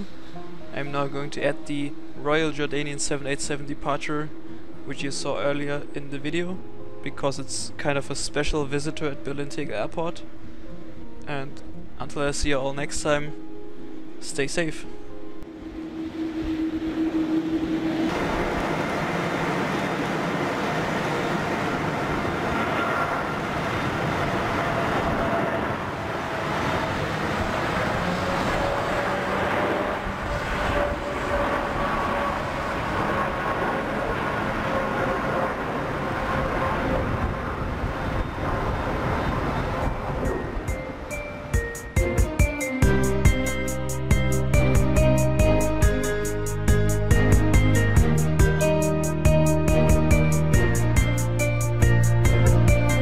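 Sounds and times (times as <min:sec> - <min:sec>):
jet engines during takeoff: 0:15.4 - 0:42.6.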